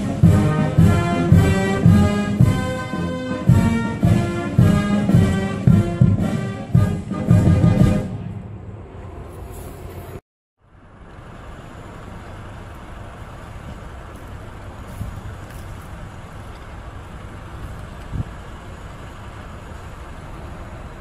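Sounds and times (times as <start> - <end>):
outdoor rumble and hiss: 0.0 - 21.0.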